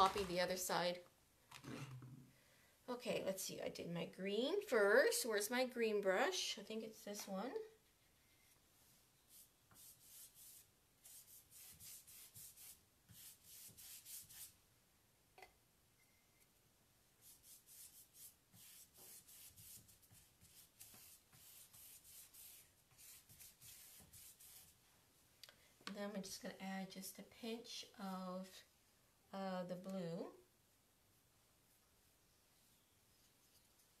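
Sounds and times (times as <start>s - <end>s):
paintbrush strokes on wood: 8.8s - 14.6s, 17.2s - 24.8s.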